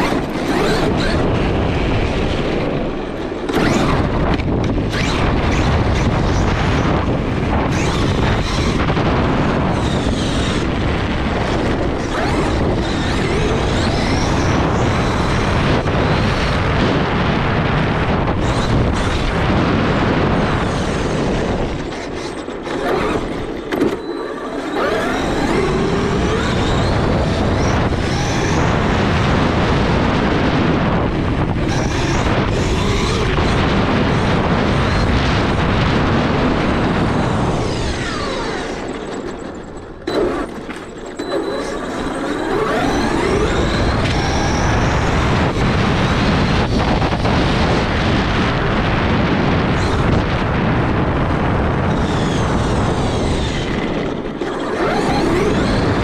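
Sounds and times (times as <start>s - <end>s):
rc truck rumbling over cobblestones: 0.0s - 56.0s
electric motor whine: 17.4s - 39.4s, 40.0s - 56.0s.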